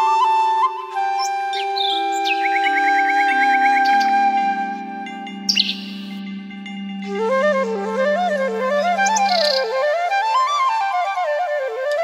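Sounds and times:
bird chirps and trill: 0:00.0 - 0:11.2
held flute note: 0:00.0 - 0:12.0.

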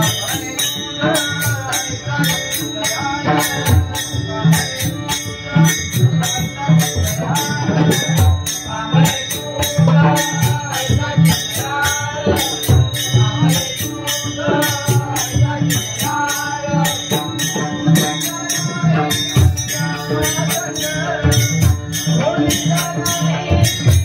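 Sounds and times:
barrel drum rhythm: 0:00.0 - 0:24.0
devotional singing: 0:00.0 - 0:24.0.

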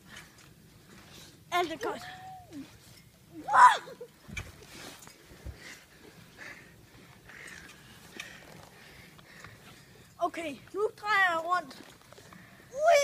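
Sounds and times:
light clicks and rustles: 0:04.0 - 0:12.6.

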